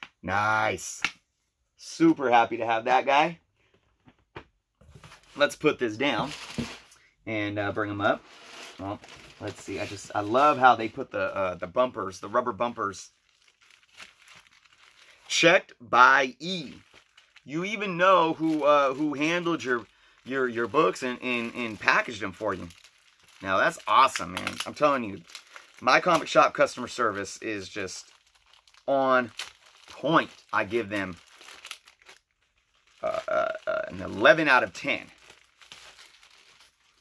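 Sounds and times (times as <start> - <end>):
plastic packaging crinkling: 4.9 - 15.4, 16.4 - 37.0.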